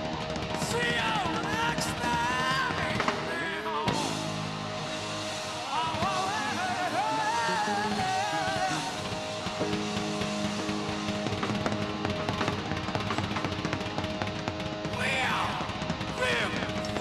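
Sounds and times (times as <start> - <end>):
rock band playing: 0.0 - 17.0.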